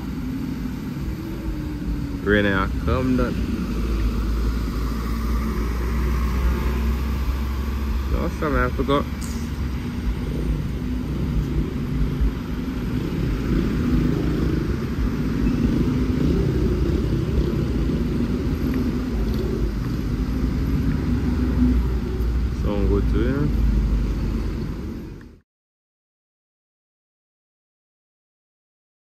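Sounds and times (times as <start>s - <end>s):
road traffic rumble: 0.0s - 25.4s.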